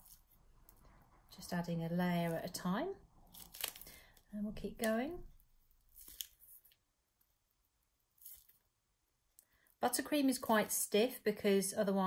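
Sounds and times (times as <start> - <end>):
plastic piping bag rustling: 0.0 - 1.0, 3.2 - 7.4.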